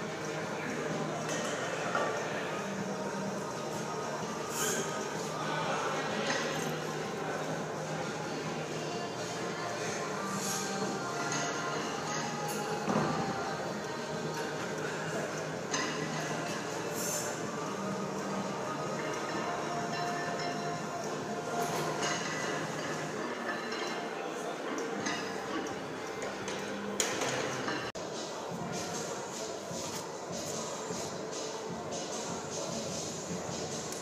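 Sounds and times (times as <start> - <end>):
gym background rumble and hiss: 0.0 - 34.0.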